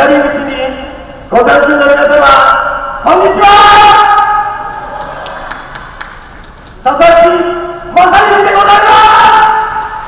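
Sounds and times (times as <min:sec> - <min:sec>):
man's voice over loudspeaker: 0:00.0 - 0:04.7, 0:06.8 - 0:10.0.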